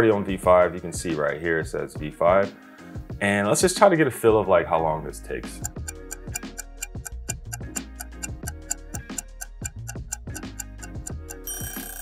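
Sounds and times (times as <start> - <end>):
background music with low note: 0.0 - 12.0
clock ticking: 5.6 - 12.0.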